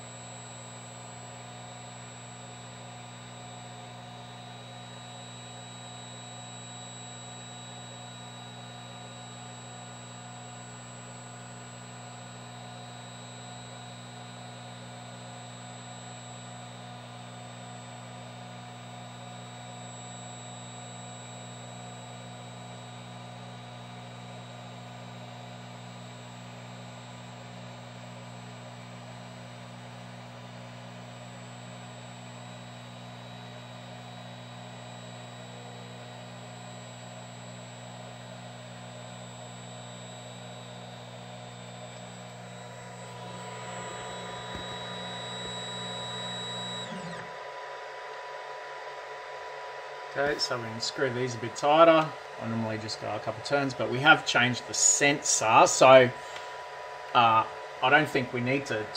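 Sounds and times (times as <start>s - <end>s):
faint steady hum: 0.0s - 29.1s, 29.8s - 47.4s
stepper motor hum with whine: 0.0s - 58.9s.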